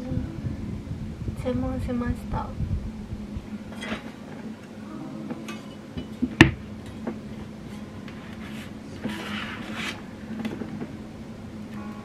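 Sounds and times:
hands rubbing and sliding on desk: 8.1s - 10.6s.

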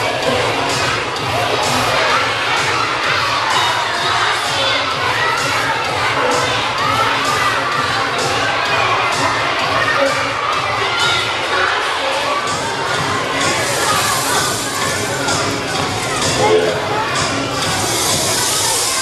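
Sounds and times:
children shouting and cheering: 0.0s - 19.0s
steady beat: 12.6s - 18.4s.

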